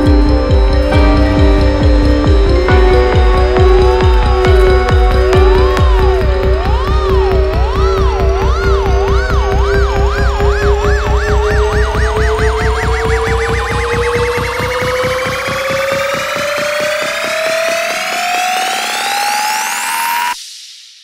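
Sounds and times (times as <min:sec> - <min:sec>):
kick and bass beat: 0:00.0 - 0:18.8
rising synth sweeps: 0:00.0 - 0:20.4
wobbling siren-like synth: 0:00.0 - 0:20.4.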